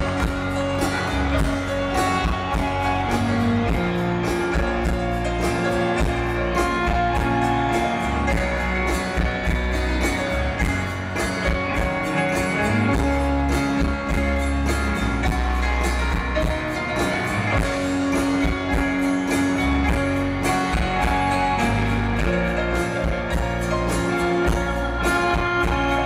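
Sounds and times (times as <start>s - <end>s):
live rock band instrumental: 0.0s - 26.0s.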